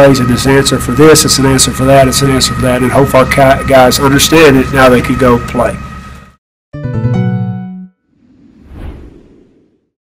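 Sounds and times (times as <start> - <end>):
whoosh sound effect: 8.1 - 10.0.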